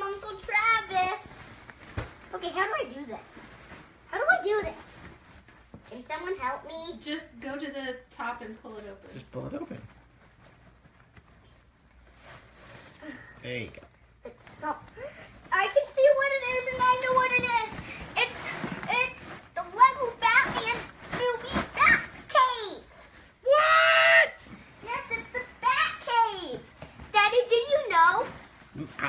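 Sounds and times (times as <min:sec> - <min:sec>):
child shouting and squealing: 0:23.4 - 0:26.6.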